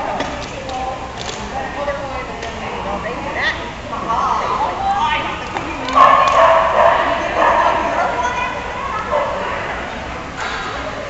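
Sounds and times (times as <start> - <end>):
voices: 0.0 - 11.0
dog barking and yipping: 5.9 - 9.5.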